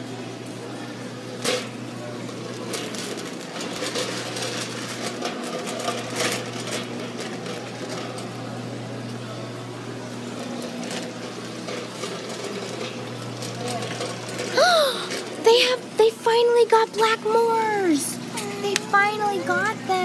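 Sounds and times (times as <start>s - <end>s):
shopping cart rattling: 1.2s - 20.0s.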